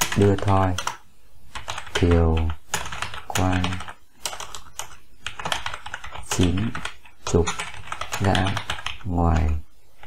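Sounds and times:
typing on computer keyboard: 0:00.0 - 0:01.0, 0:01.6 - 0:09.6.

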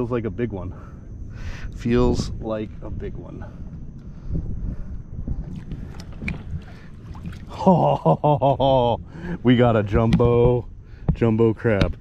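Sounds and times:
wind rumbling on microphone: 0:00.6 - 0:12.0
light water splashes: 0:05.5 - 0:08.1.

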